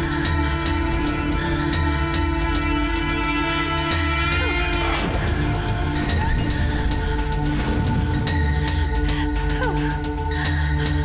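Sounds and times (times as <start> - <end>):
tense drama score: 0.0 - 11.0.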